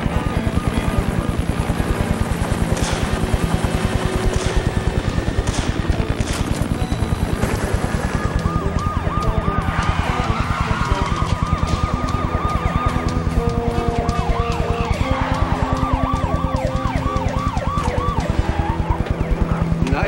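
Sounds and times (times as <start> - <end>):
dramatic chase music: 0.0 - 20.0
police sirens yelping: 5.9 - 20.0.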